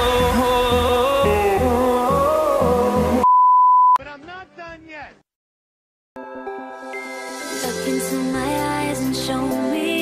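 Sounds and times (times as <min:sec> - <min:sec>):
loud single-pitched beep: 0:03.2 - 0:04.0.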